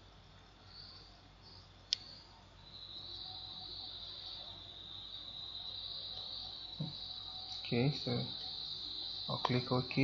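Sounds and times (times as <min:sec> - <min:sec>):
high-pitched insect-like trill: 0:00.0 - 0:10.0.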